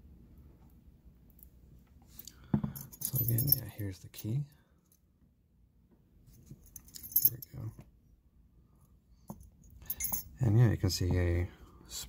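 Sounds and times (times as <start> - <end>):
metal keys clicking: 9.7 - 10.3.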